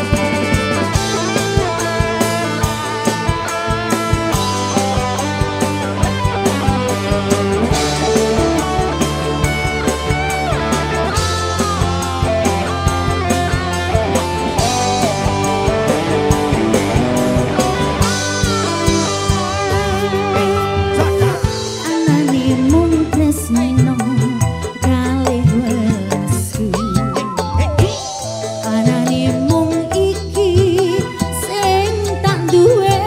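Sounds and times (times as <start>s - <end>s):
bass: 0.0s - 33.0s
drum kit: 0.0s - 33.0s
electric guitar lead: 0.0s - 33.0s.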